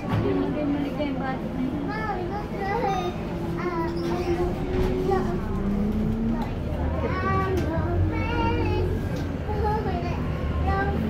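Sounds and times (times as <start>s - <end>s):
bus rumbling from inside: 0.0s - 11.0s
passengers' voices: 0.0s - 11.0s.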